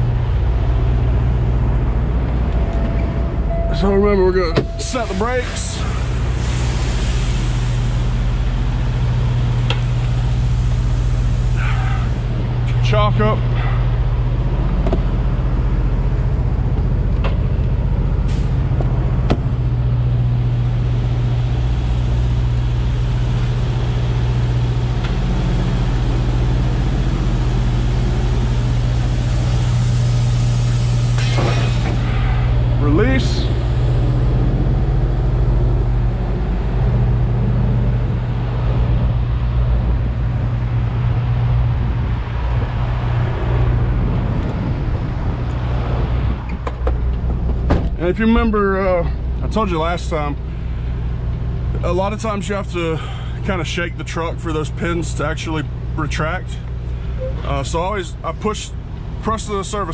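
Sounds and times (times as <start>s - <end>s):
diesel truck engine idling: 0.0s - 59.9s
air hiss: 5.0s - 8.5s, 28.6s - 32.6s.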